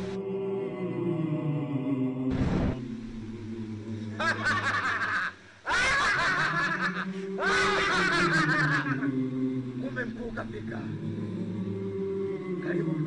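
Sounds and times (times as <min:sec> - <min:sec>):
low musical drone: 0:00.0 - 0:05.0, 0:06.9 - 0:13.0
person laughing in bursts: 0:04.2 - 0:09.1.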